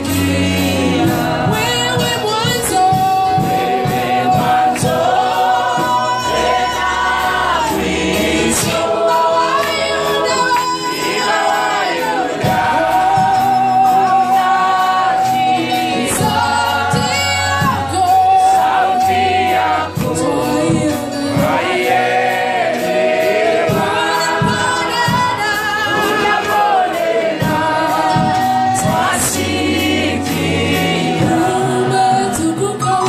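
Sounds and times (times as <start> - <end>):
choir singing gospel: 0.0 - 33.0
instrumental backing with beat: 0.0 - 33.0.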